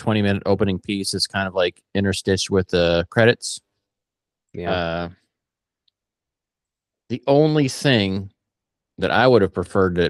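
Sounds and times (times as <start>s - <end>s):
man saying uh: 0.0s - 3.6s, 4.6s - 5.1s, 7.1s - 8.3s, 9.0s - 10.0s.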